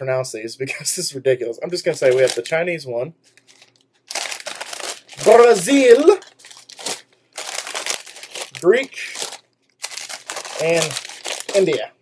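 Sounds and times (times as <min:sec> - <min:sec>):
chip bags crinkling: 0:01.8 - 0:02.6, 0:03.3 - 0:11.9.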